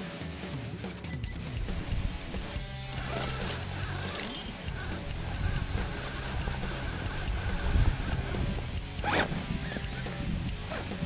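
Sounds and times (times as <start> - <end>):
electric motor whining: 2.0 - 11.0.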